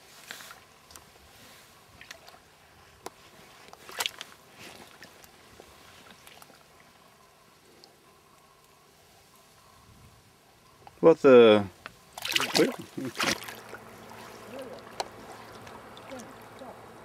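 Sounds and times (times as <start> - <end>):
river water sloshing: 0.3 - 7.9, 12.0 - 17.0
water splash: 12.2 - 16.6.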